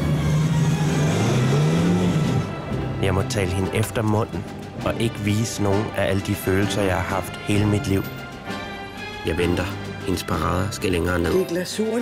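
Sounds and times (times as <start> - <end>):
car engine accelerating: 0.0 - 3.0.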